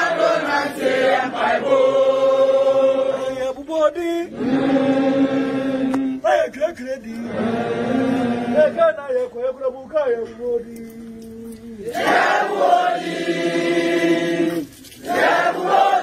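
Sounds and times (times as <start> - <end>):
group of people chanting: 0.0 - 3.4, 4.3 - 6.2, 7.2 - 8.8, 11.8 - 16.0.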